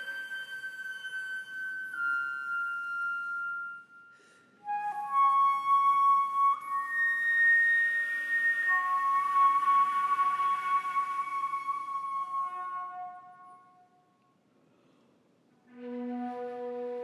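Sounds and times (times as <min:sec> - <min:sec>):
flute playing long notes: 0:00.0 - 0:13.9, 0:15.7 - 0:17.0.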